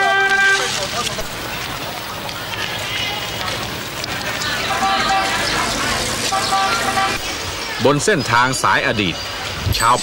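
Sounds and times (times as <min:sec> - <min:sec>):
overlapping voices: 0:00.0 - 0:08.0
traffic noise: 0:00.0 - 0:10.0
man narrating: 0:07.8 - 0:09.2, 0:09.8 - 0:10.0.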